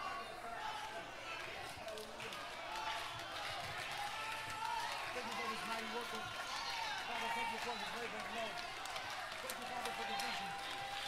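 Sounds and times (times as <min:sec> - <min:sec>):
congregation praising and praying: 0:00.0 - 0:11.0.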